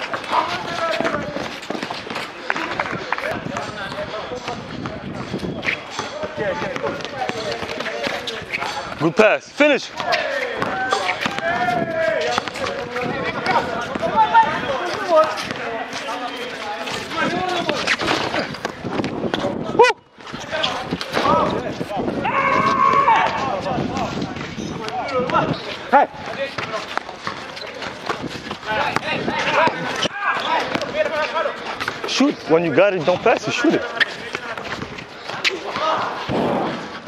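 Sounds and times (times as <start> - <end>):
basketball bouncing on concrete: 0.0 - 9.0, 9.9 - 16.2, 22.6 - 32.2, 33.0 - 36.9
running footsteps: 0.0 - 37.0
players shouting: 6.2 - 18.6, 19.7 - 24.2, 27.5 - 36.8.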